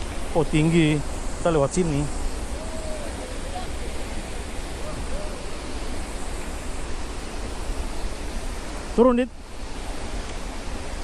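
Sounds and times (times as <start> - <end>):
waterfall and river rushing: 0.0 - 11.0
faint voices: 1.6 - 5.8.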